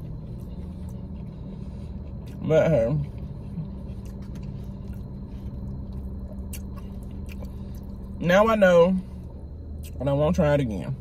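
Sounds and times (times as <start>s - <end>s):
person chewing food: 0.0s - 8.2s
car cabin hum: 0.0s - 11.0s.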